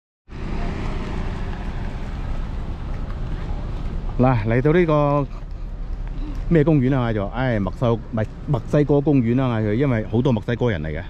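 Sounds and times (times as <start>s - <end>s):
van driving past: 0.3s - 11.0s.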